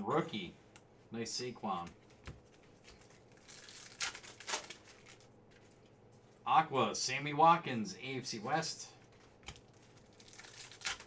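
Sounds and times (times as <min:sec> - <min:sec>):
cards rustling: 0:01.8 - 0:06.2, 0:09.0 - 0:11.0.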